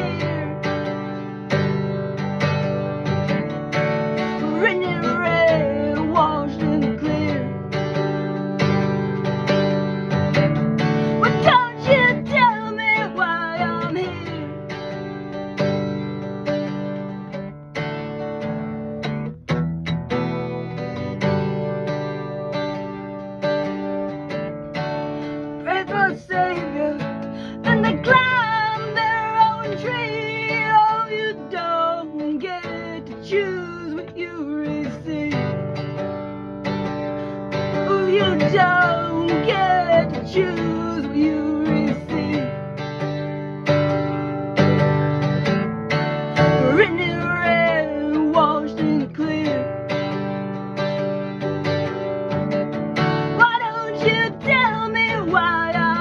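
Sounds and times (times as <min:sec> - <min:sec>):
person singing: 0:00.0 - 0:01.9, 0:04.1 - 0:09.0, 0:10.8 - 0:15.4, 0:25.6 - 0:35.9, 0:37.3 - 0:42.8, 0:46.4 - 0:50.3, 0:53.2 - 0:56.0
acoustic guitar strumming: 0:00.0 - 0:56.0.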